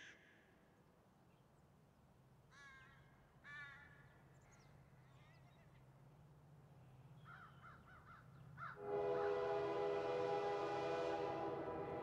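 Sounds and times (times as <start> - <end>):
held chord of steady tones: 8.8 - 12.0.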